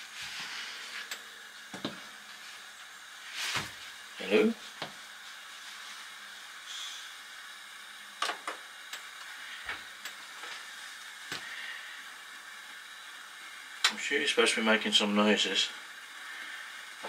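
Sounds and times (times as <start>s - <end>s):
low steady hiss: 0.0s - 17.0s.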